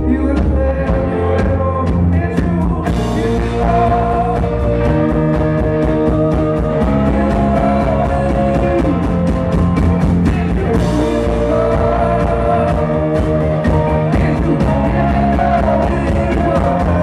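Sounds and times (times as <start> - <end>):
rock band playing live: 0.0 - 17.0.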